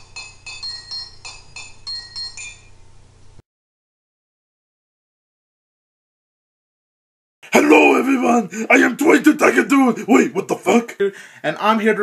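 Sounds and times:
glassy clinking chimes: 0.0s - 2.8s.

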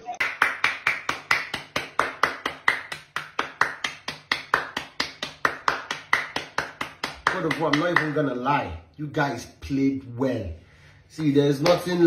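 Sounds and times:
person clapping hands: 0.0s - 8.2s, 11.2s - 12.0s.

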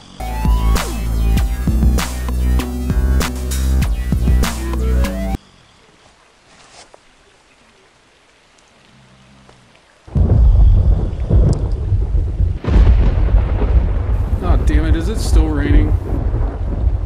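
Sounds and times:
heavy rain: 4.1s - 17.0s
thunder rumbling: 10.1s - 17.0s.

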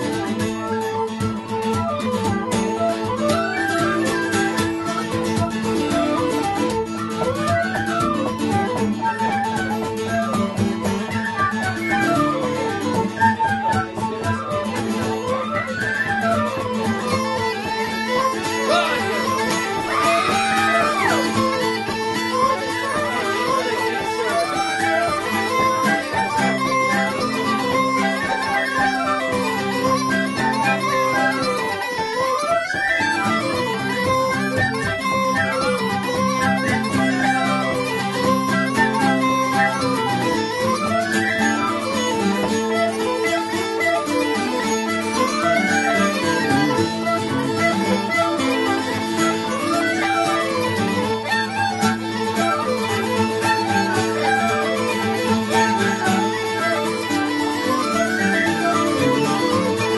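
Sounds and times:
bagpipe drones: 0.0s - 59.9s
tin whistles melody: 0.1s - 59.9s.

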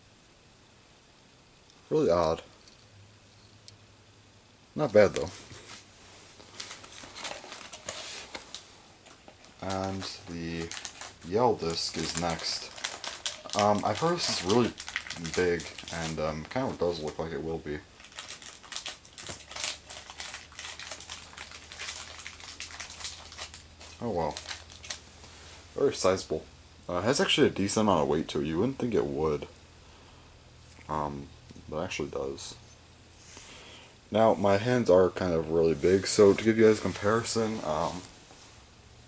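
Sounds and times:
packaging rustling and crinkling: 4.8s - 26.1s, 35.7s - 38.6s.

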